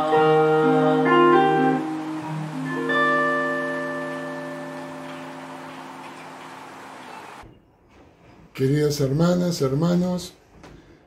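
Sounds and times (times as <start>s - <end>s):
electric guitar chord ringing: 0.0s - 7.4s.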